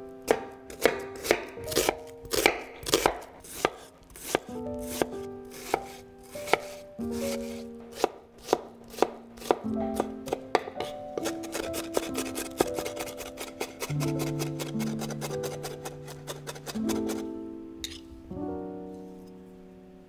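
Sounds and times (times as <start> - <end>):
knife chopping on wooden board: 0.3 - 17.2.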